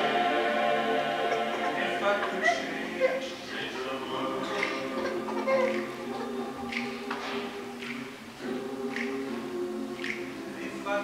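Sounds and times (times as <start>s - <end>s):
mixed choir singing a cappella: 0.0s - 11.0s.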